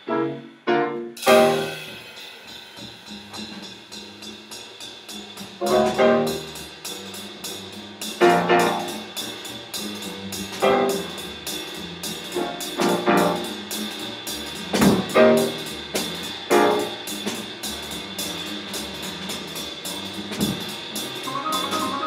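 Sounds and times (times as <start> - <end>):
piano chords: 0.0 - 1.8, 5.6 - 6.4, 8.3 - 8.9, 21.2 - 22.0
double bass notes: 0.0 - 1.9, 5.2 - 22.0
cymbal strikes: 1.2 - 7.0.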